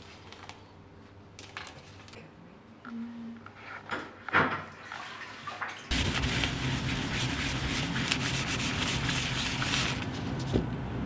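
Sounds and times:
cloth scrubbing metal plate: 5.9s - 10.1s
low hum: 5.9s - 11.0s.

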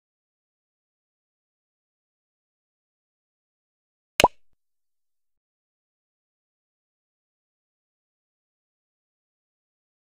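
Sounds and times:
plop sound effect: 4.2s - 4.4s.

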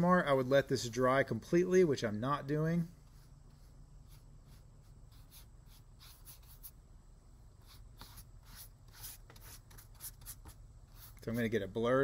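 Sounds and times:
paintbrush swishing on paper: 2.9s - 6.8s, 7.6s - 11.6s.

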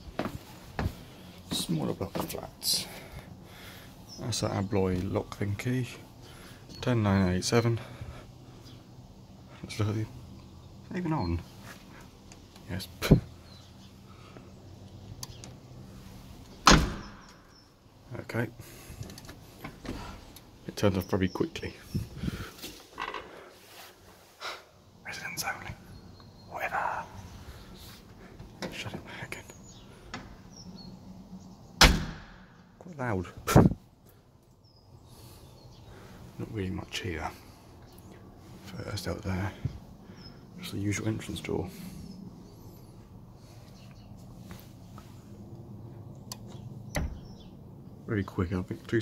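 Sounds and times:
light clicks: 14.8s - 15.6s
dull thump: 16.6s - 17.3s, 31.8s - 32.4s
knocks handling heavy door: 16.6s - 17.3s, 47.0s - 47.3s
door shutting with bang: 16.6s - 17.4s, 31.8s - 32.4s, 47.0s - 47.3s.

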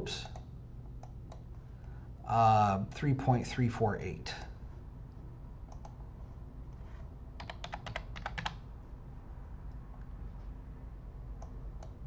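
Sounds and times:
low steady hum: 0.0s - 12.0s
computer keyboard typing: 7.4s - 8.6s.

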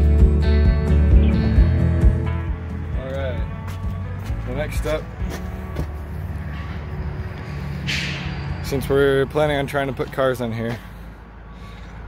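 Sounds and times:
guitar background music: 0.0s - 8.3s.

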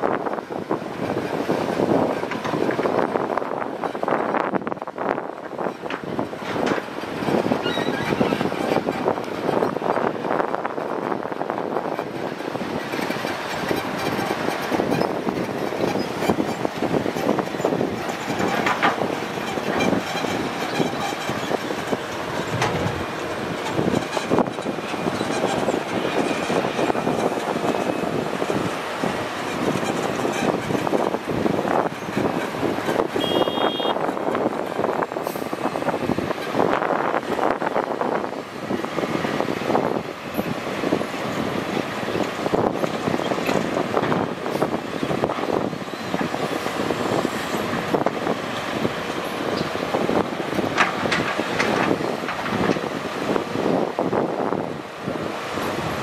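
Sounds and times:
excavator diesel engine under load: 0.0s - 56.0s
high-pitched beep: 33.2s - 34.0s.

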